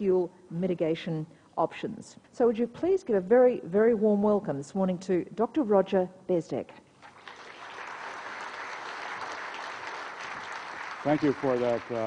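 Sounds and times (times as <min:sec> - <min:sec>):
large audience applauding: 0:07.0 - 0:12.0.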